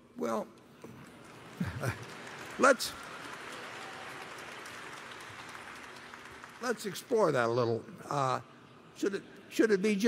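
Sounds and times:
audience applauding: 0.9s - 7.8s.

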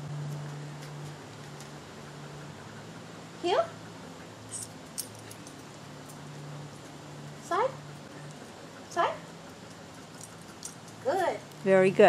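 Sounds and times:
steady low hum: 0.0s - 12.0s
metallic harness jingle: 4.5s - 7.0s, 9.7s - 11.7s.

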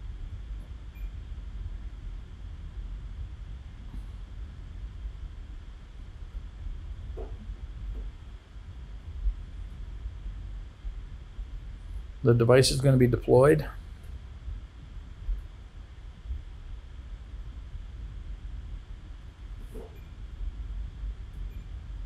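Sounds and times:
low steady background rumble: 0.0s - 22.0s.

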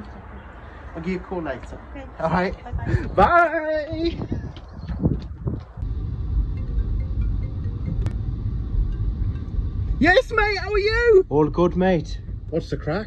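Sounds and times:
car driving interior rumble: 5.0s - 13.0s.

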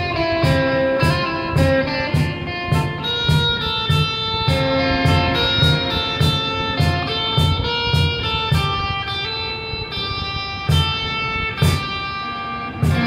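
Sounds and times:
electric guitar melody: 0.0s - 13.0s
steady drum beat: 0.0s - 13.0s.

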